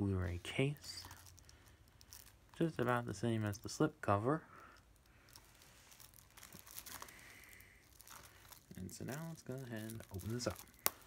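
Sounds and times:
plastic case crinkling and clicking: 0.9s - 3.8s, 4.7s - 11.0s.

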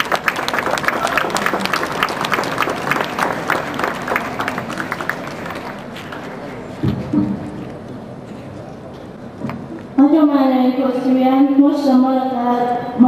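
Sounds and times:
audience applauding: 0.0s - 6.6s.

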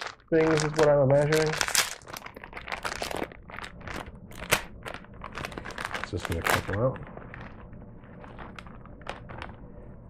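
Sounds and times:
corn puffs ticking into hand: 0.0s - 7.6s
snack bag crinkling: 0.0s - 9.8s
low room hum: 0.0s - 10.0s.

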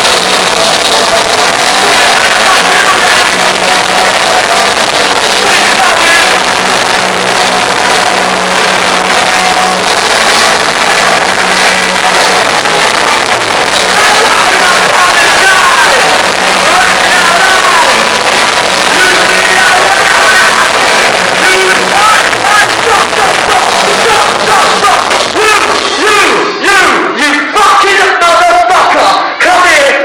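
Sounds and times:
live punk rock band: 0.0s - 26.0s.

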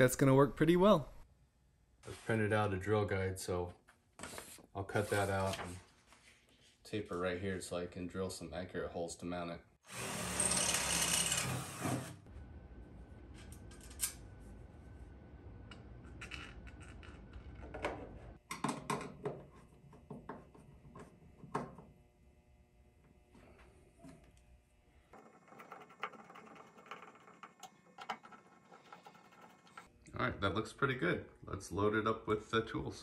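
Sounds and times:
low hum: 12.3s - 18.4s
small hard parts clicking and knocking: 25.1s - 29.9s.

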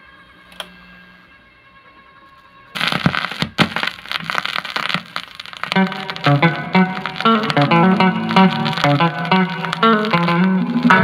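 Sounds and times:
vinyl record pops: 2.8s - 11.0s
vinyl surface crackle: 2.8s - 11.0s.

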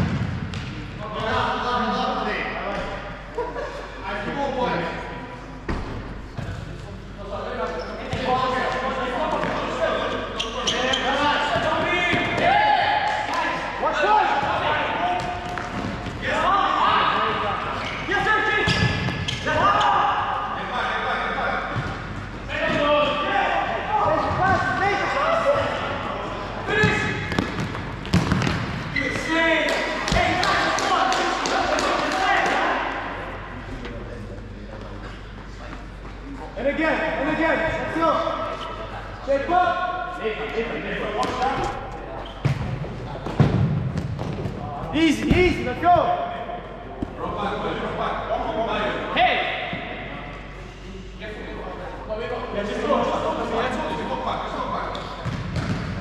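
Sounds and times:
ball kicked and bouncing on court: 0.0s - 0.8s, 26.8s - 28.8s, 42.3s - 44.6s, 55.2s - 56.0s.

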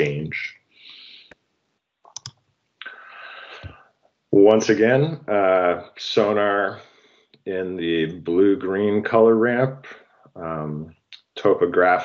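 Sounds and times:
sharp clicks: 2.1s - 2.4s.

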